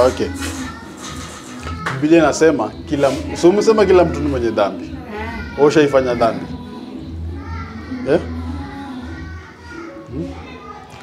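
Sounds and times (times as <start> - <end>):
indistinct background voices: 0.0 - 11.0.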